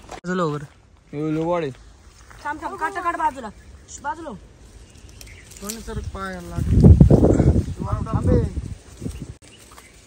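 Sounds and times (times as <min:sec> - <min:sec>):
rustles and clicks of leaves: 0:00.0 - 0:10.0.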